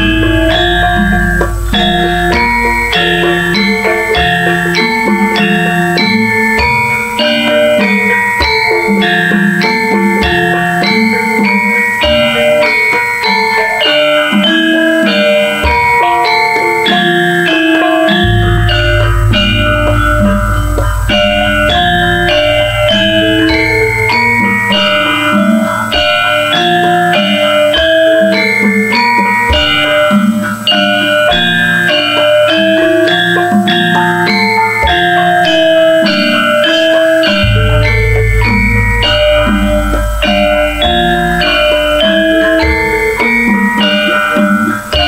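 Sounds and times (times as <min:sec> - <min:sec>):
deep ringing low tone: 0:00.0 - 0:11.4, 0:18.1 - 0:28.3, 0:34.9 - 0:44.5
drum strokes: 0:00.0 - 0:45.0
metallophones ringing melody: 0:00.0 - 0:45.0.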